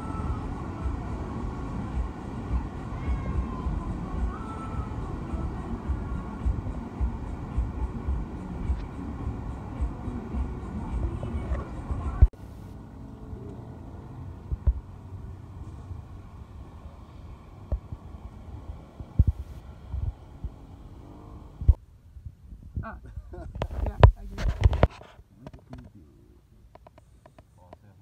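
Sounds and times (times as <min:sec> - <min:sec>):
wind buffeting microphone: 0:14.4 - 0:24.9.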